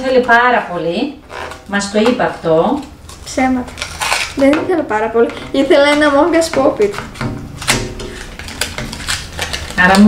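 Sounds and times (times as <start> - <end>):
packaging clicking and crackling: 3.0 - 4.6, 5.8 - 10.0.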